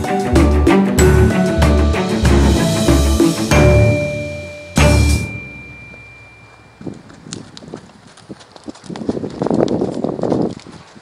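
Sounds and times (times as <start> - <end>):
hoof thuds on dirt: 5.8 - 11.0.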